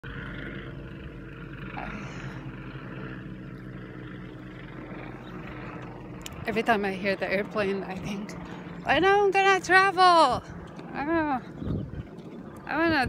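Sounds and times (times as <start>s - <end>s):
airplane flying overhead: 0.0s - 13.0s.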